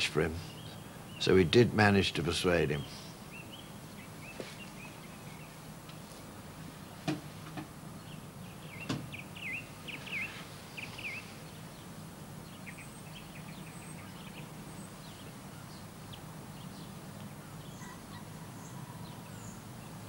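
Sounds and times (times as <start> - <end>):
small birds chirping: 0.0 - 6.0, 7.9 - 20.0
steady low hum: 0.0 - 20.0.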